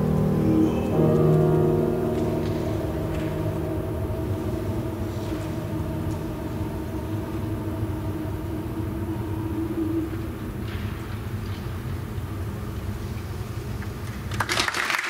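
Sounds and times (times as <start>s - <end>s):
man singing with vibrato: 0.0s - 10.6s
piano chords: 0.0s - 13.1s.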